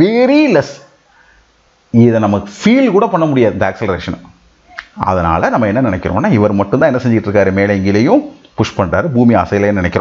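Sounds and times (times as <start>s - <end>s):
man speaking: 0.0s - 1.0s, 1.9s - 10.0s.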